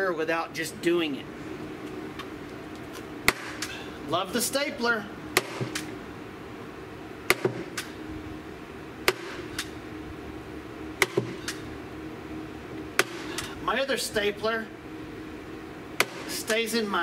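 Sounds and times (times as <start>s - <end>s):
staple gun firing: 5.4s - 5.9s.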